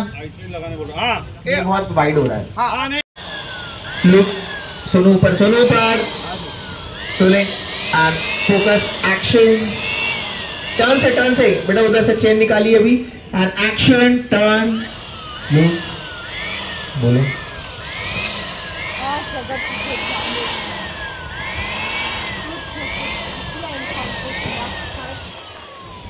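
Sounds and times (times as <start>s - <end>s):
vehicle engine running: 3.2s - 26.0s
engine revving in blips: 14.6s - 26.0s.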